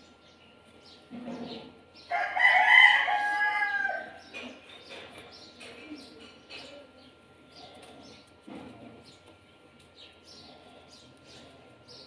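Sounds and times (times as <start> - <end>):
rooster crowing: 2.1 - 4.2.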